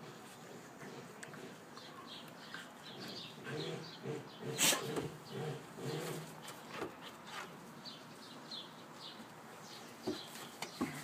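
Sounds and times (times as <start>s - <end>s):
puppies play-growling: 2.6s - 7.6s.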